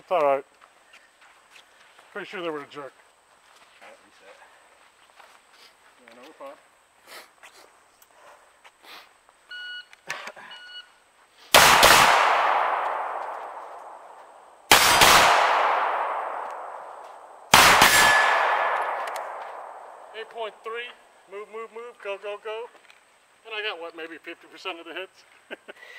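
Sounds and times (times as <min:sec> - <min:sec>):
pistol shots: 0:11.5 - 0:20.2.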